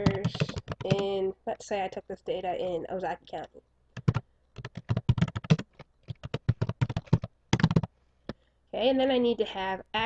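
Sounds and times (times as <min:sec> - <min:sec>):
typing on computer keyboard: 0:00.0 - 0:01.1, 0:04.0 - 0:07.9.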